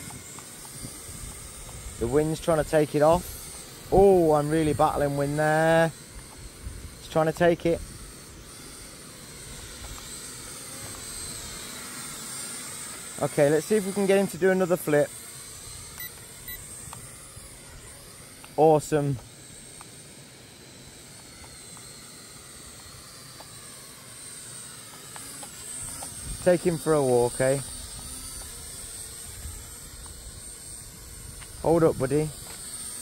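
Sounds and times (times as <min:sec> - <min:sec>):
thin high-pitched whine: 0:00.0 - 0:33.0.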